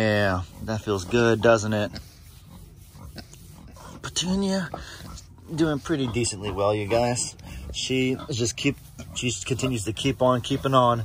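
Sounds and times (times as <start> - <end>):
pig grunting: 0.0 - 11.0.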